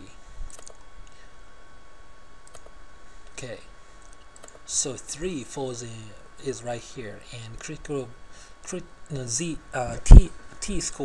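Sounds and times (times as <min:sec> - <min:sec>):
computer mouse clicks: 0:00.5 - 0:00.8, 0:02.4 - 0:02.7, 0:04.0 - 0:04.7.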